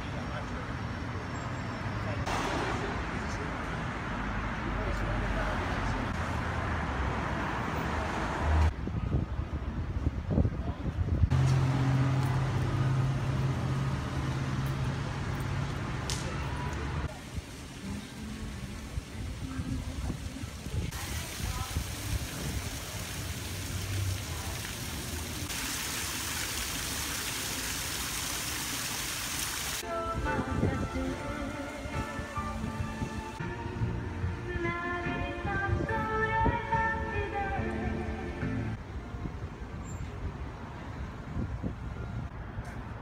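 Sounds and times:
car traffic: 0.0s - 10.2s, 11.2s - 30.0s, 30.8s - 43.0s.

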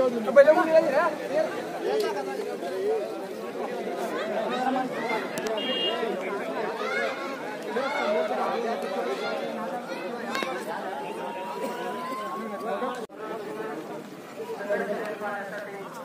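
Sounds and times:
crowd of men talking: 0.0s - 16.0s.

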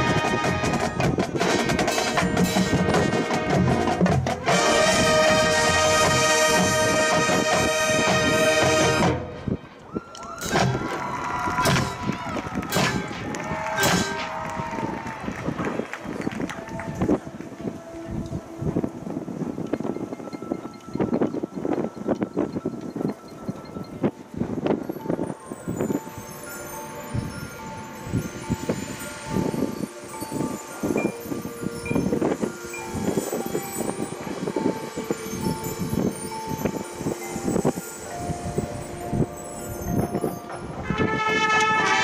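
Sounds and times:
marching band percussion strikes: 0.0s - 9.4s, 10.4s - 14.7s
wind instruments holding notes: 0.0s - 42.0s
mallet percussion shimmer: 12.7s - 14.4s, 19.0s - 40.9s.

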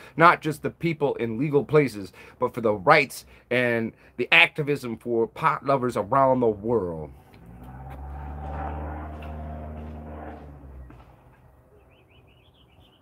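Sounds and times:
vehicle engine passing by: 7.1s - 11.8s
bird chirping: 10.6s - 13.0s.

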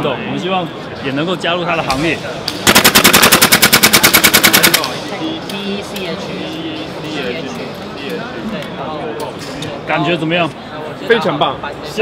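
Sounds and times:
airsoft rifle full-auto firing: 2.6s - 5.0s.

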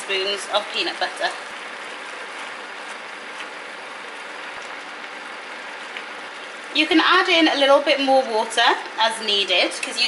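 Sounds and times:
food sizzling in a frying pan: 0.0s - 9.3s.

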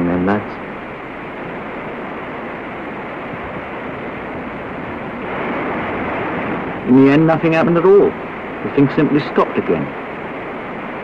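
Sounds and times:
surf washing onto beach: 0.0s - 11.0s.

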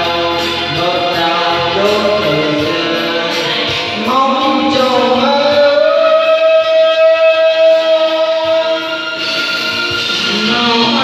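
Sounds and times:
backing track music: 0.0s - 11.0s
karaoke singing: 0.0s - 11.0s.

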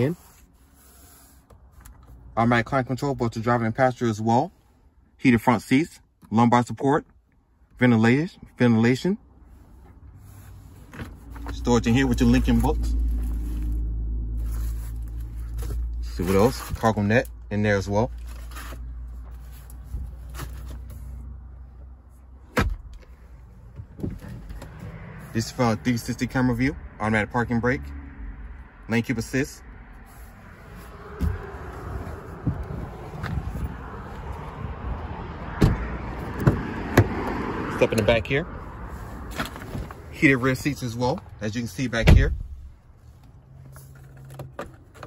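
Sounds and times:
steady low rumble: 22.8s - 36.5s
knocks and thumps on car doors: 35.6s - 37.3s.

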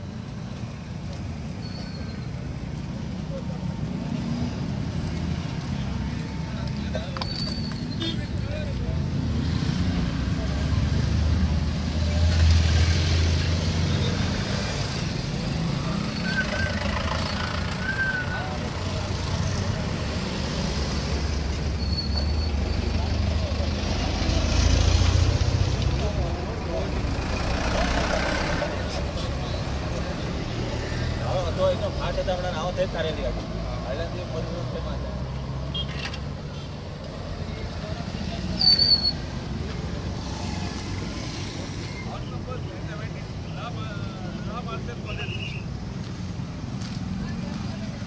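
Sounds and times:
heavy vehicles passing: 0.0s - 48.0s
vehicles rumbling past: 0.0s - 48.0s.

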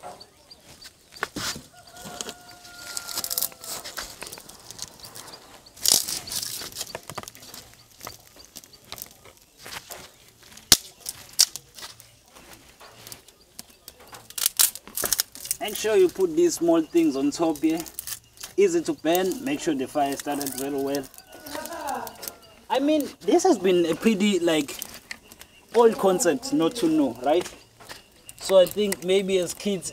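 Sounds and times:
rustling: 0.0s - 29.9s
sticks snapping: 0.8s - 23.2s, 23.9s - 29.9s.

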